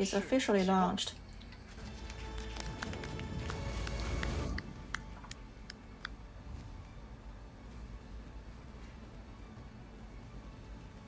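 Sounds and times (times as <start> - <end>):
deep steady rumble with held tones: 0.0 - 11.0.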